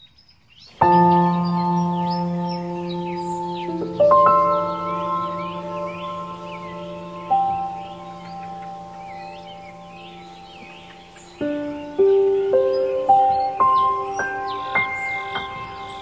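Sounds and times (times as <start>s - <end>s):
birds chirping faintly: 0.0s - 16.0s.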